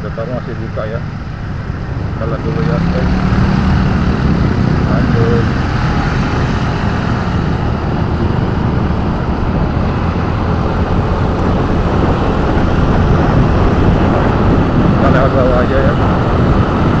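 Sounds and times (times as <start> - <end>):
wind and road noise on motorbike: 0.0 - 17.0.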